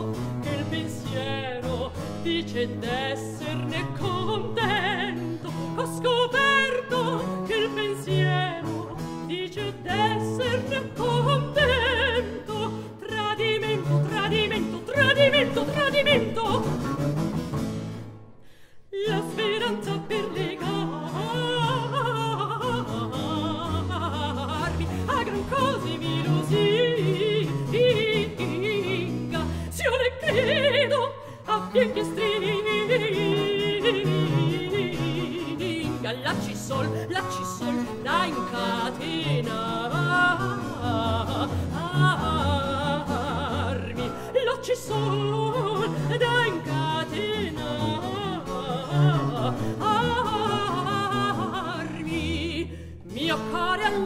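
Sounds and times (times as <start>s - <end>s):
woman singing opera: 0.0s - 17.0s, 18.9s - 54.0s
harpsichord and bass continuo: 16.1s - 18.2s.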